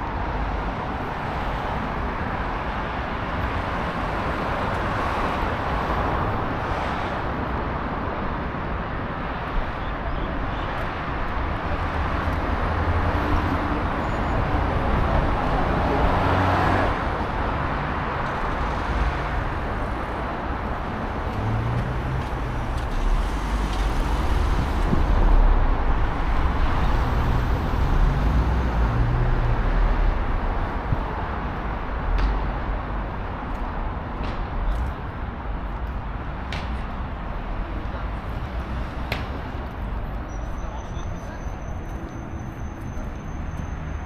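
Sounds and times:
cars passing: 0.0s - 44.0s.

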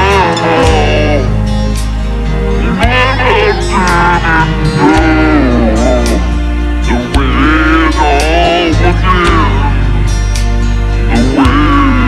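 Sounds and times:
backing track low notes: 0.0s - 12.0s
man singing into a microphone: 6.9s - 9.8s.

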